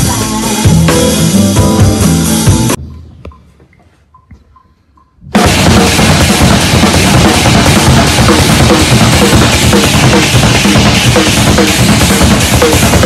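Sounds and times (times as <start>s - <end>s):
acoustic drum kit played fast: 0.0s - 2.8s, 5.3s - 13.0s.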